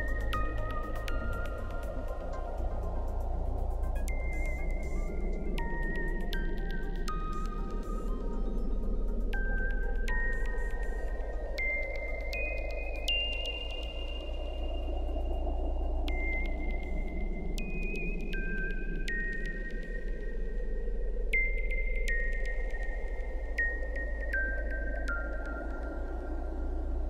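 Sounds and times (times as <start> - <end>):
deep bass drone: 0.0 - 27.0
hazy synth pad: 0.0 - 27.0.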